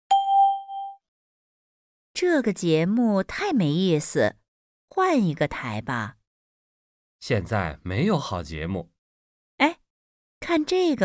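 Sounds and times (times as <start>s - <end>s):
bell-like chime: 0.1s - 1.0s.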